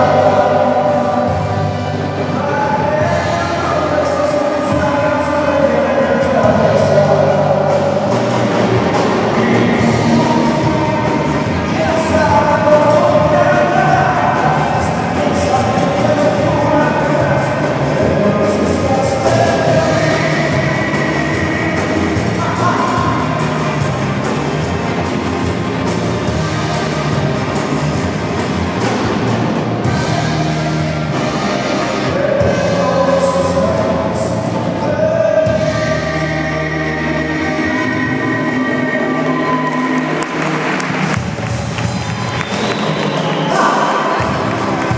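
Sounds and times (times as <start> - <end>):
drums: 0.0 - 44.9
electric guitars: 0.0 - 44.9
live band with horn section: 0.0 - 44.9
crowd applause: 38.5 - 44.9.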